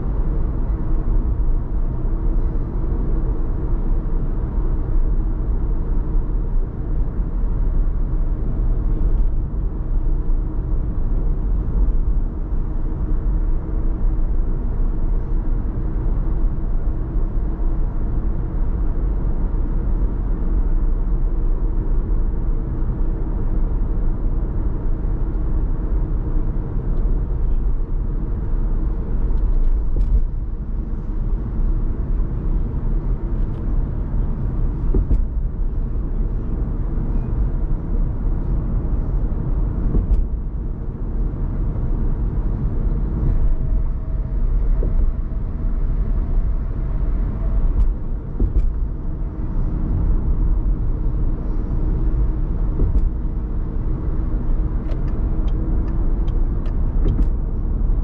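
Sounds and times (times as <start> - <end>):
car engine: 0.0 - 58.0
tyres rumbling on road: 0.0 - 58.0.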